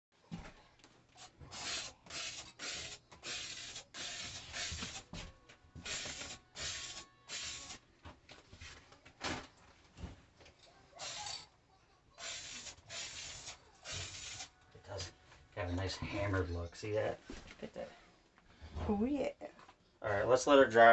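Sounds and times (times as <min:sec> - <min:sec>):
spray paint hissing bursts: 0:01.5 - 0:05.1, 0:05.8 - 0:07.8, 0:11.0 - 0:11.4, 0:12.2 - 0:14.5.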